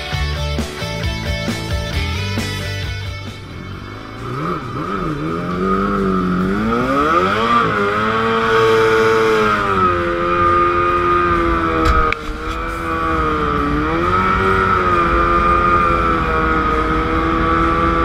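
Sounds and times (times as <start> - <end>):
boat engine revving: 2.9 - 18.0.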